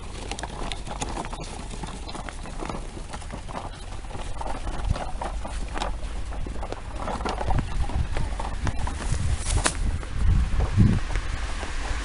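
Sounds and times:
toy wheels scuffing and knocking: 0.0s - 11.8s
footsteps on snowy pavement: 0.0s - 12.0s.

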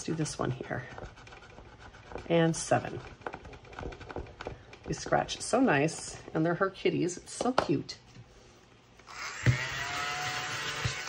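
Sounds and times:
tool scratching card coating: 0.0s - 4.2s.

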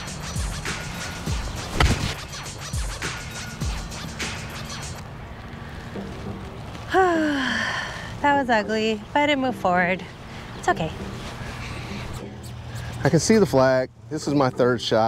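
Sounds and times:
music with steady beat: 0.0s - 5.0s
golf club striking ball: 1.6s - 2.2s.

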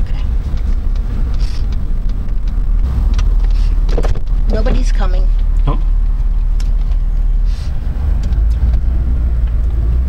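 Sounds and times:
road and wind noise rumble: 0.0s - 10.0s.

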